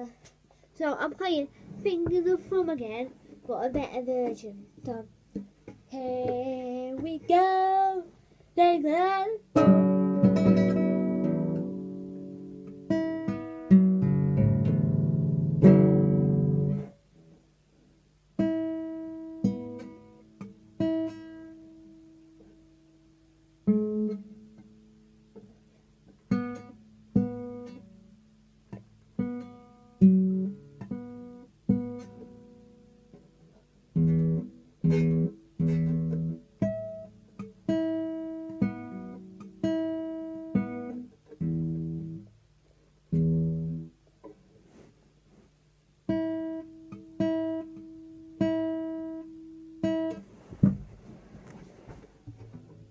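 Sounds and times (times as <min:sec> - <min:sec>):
classical guitar playing: 0:00.8 - 0:17.4, 0:18.4 - 0:42.4, 0:43.0 - 0:44.4, 0:46.0 - 0:52.9.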